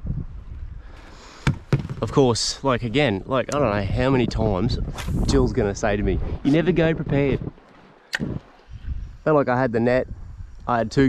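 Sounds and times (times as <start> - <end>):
sharp knocks: 1.4 - 2.1.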